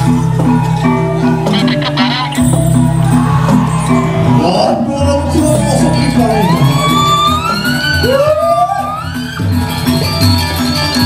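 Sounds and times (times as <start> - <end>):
gamelan playing: 0.0 - 4.8.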